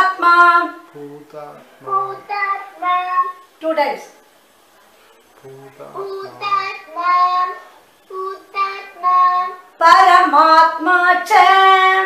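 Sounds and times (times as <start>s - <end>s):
child chanting: 1.6s - 3.5s, 5.8s - 9.8s.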